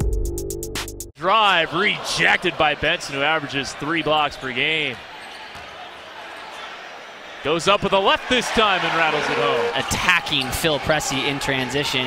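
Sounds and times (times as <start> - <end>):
basketball court sounds: 2.2 - 7.4.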